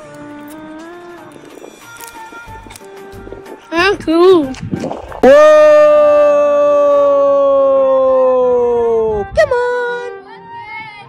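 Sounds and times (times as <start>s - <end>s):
background music: 0.0s - 6.2s, 8.8s - 11.0s
person shouting whoa: 5.2s - 9.2s.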